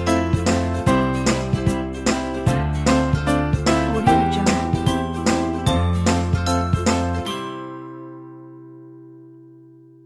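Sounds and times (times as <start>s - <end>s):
background music with bass line: 0.0s - 7.4s.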